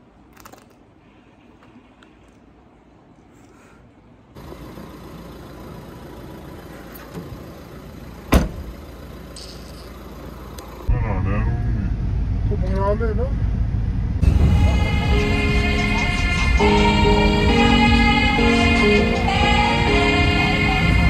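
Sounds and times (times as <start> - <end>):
outdoor background: 0.0 - 21.0
low engine rumble: 4.3 - 21.0
car door slam: 8.3 - 8.7.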